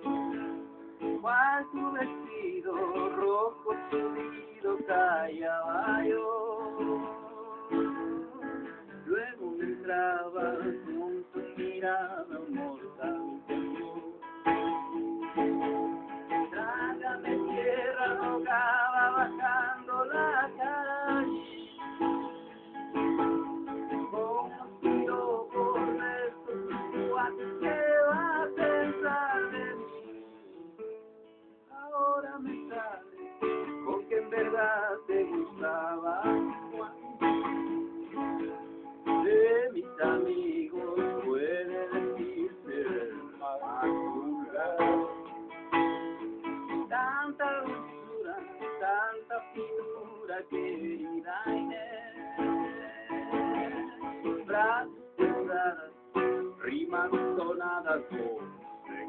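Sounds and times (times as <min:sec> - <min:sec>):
acoustic guitar strummed and picked: 0:00.0 - 0:59.0.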